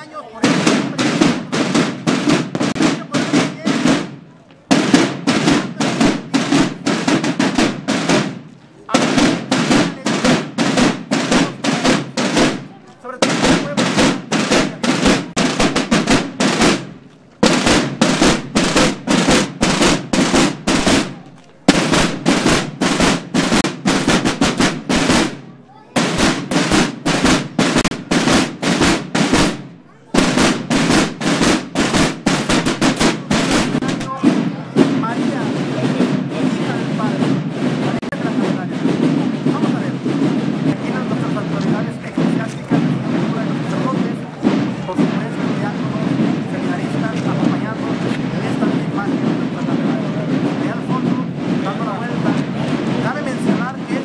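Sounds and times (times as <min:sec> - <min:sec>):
marching snare drums cadence: 0:00.0 - 0:54.0.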